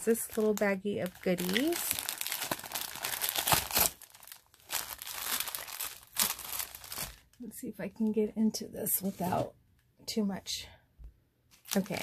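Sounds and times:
cellophane bag crinkling: 0:00.0 - 0:07.4, 0:11.6 - 0:12.0.

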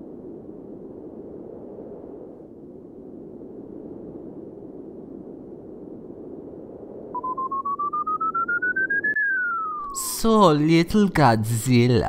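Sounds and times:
rising electronic beeping: 0:07.1 - 0:10.1.

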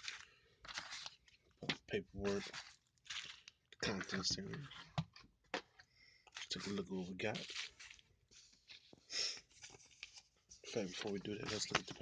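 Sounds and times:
bubble wrap and paper crinkling: 0:00.0 - 0:04.8, 0:06.3 - 0:12.0.

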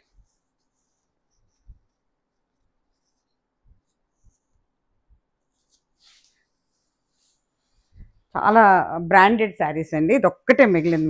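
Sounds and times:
fabric rustling: 0:00.0 - 0:08.8, 0:10.5 - 0:11.0.

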